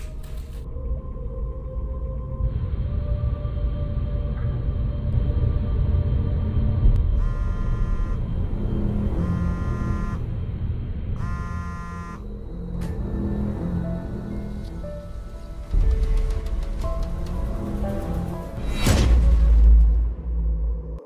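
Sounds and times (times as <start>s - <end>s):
dark trailer music: 0.0s - 21.0s
low rumbling drone: 0.0s - 21.0s
phone ringtone: 7.2s - 8.2s, 9.2s - 10.2s, 11.2s - 12.2s.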